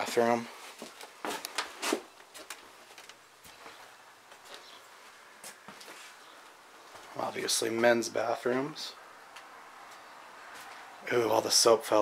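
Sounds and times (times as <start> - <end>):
footsteps on tile floor: 0.0 - 7.2.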